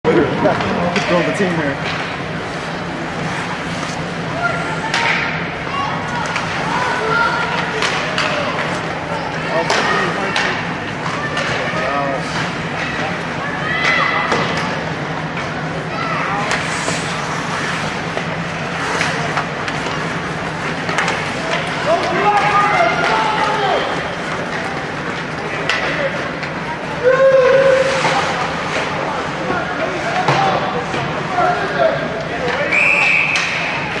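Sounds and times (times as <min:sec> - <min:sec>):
hockey sticks and puck clacking: 0:00.4 - 0:34.0
whistle blast: 0:32.7 - 0:33.7.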